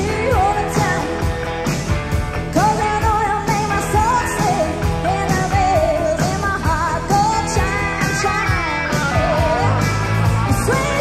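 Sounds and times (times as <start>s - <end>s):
woman singing: 0.0s - 1.5s, 2.5s - 11.0s
live rock band playing: 0.0s - 11.0s.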